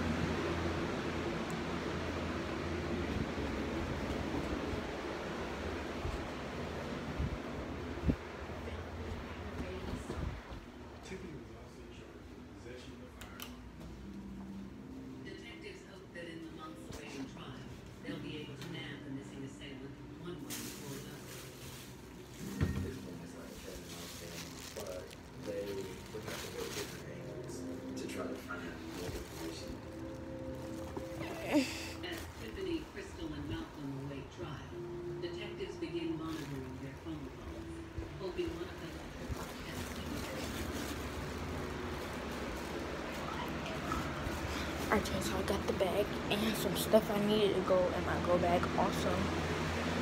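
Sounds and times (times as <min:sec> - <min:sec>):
muffled voices: 0:08.0 - 0:50.0.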